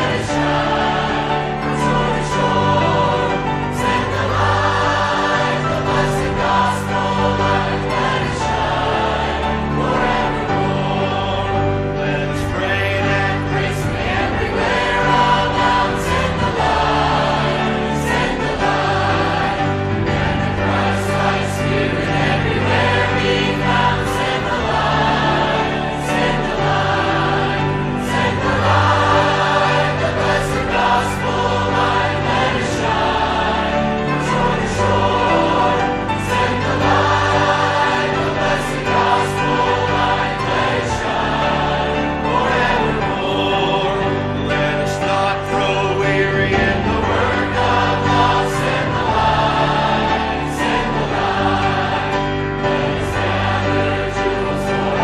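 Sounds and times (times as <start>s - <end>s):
choir singing: 0.0s - 55.0s
sustained accompaniment: 0.0s - 55.0s.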